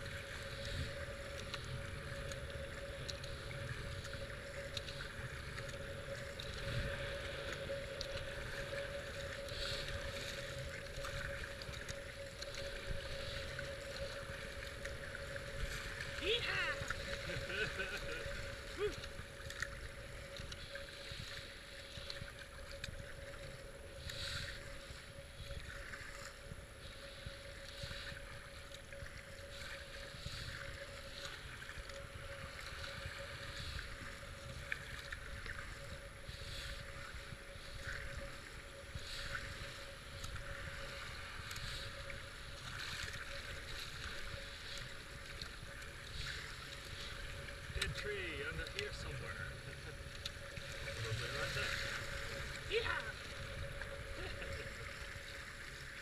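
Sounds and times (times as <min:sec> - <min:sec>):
faint steady hum: 0:00.0 - 0:56.0
rushing river water: 0:00.0 - 0:56.0
paddle strokes splashing: 0:00.1 - 0:56.0.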